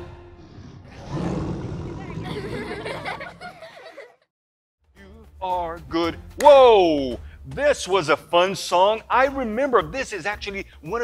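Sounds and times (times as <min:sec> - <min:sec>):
children roaring playfully: 0:00.9 - 0:04.0.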